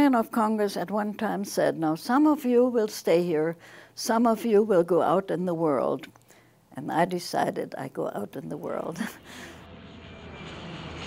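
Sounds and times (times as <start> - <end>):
aircraft engine drone: 9.2 - 11.0.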